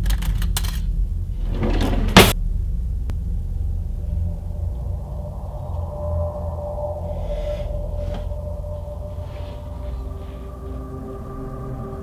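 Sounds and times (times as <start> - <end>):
low rumbling drone: 0.0 - 12.0.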